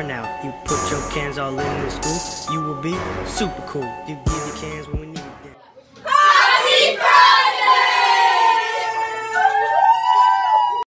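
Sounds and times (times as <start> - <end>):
young voices cheering in whoops: 7.7 - 10.9.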